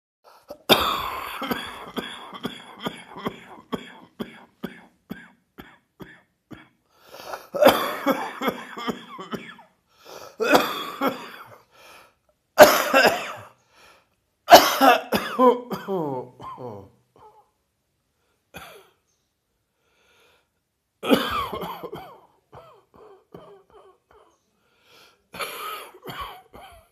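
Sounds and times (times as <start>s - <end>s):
person coughing heavily: 0.5s - 11.7s, 12.6s - 13.5s, 14.5s - 17.6s, 18.6s - 19.0s, 21.0s - 24.4s, 25.4s - 26.9s
faint breath: 6.8s - 7.6s, 9.8s - 10.4s, 11.6s - 12.3s, 13.6s - 14.2s, 19.6s - 20.6s, 24.4s - 25.4s.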